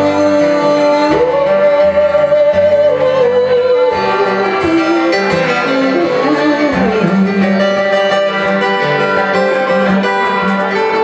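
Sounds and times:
instrumental accompaniment: 0.0s - 11.0s.

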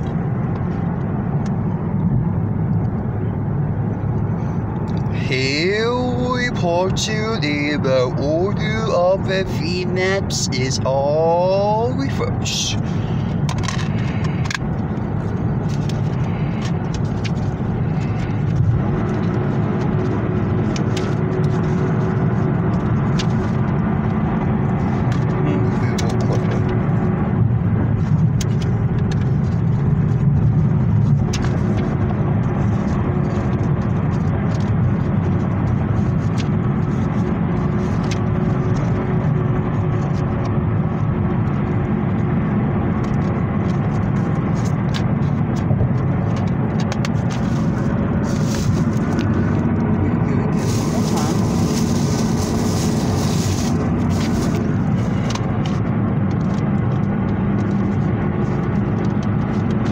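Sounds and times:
car cabin rumble: 0.0s - 59.9s.

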